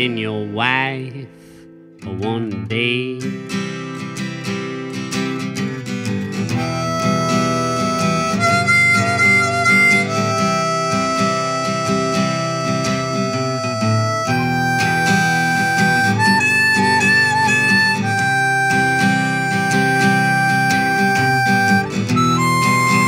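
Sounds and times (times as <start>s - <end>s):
acoustic guitar strumming: 0.0s - 23.0s
harmonica playing held notes: 6.4s - 23.0s.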